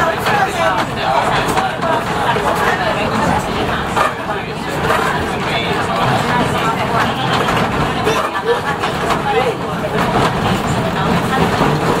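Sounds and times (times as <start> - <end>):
passengers talking: 0.0 - 12.0
train carriage running noise: 0.0 - 12.0.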